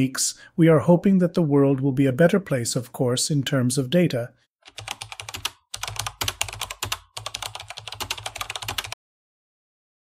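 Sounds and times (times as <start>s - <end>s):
computer keyboard typing: 4.6s - 9.0s.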